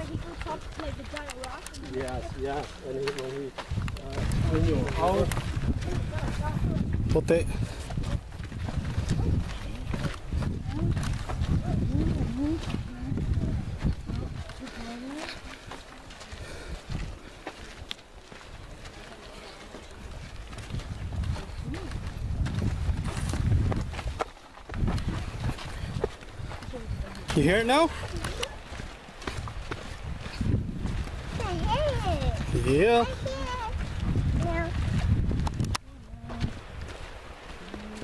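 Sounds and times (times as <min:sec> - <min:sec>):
voices talking: 0:00.0 - 0:07.5, 0:31.2 - 0:34.8
microphone handling rumble: 0:03.7 - 0:14.4, 0:20.1 - 0:27.4, 0:29.4 - 0:36.9.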